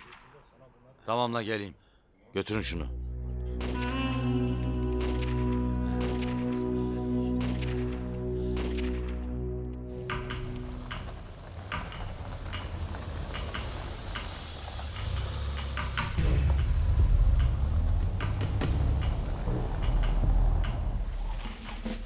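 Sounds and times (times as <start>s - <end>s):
steady music chords: 2.8s - 10.8s.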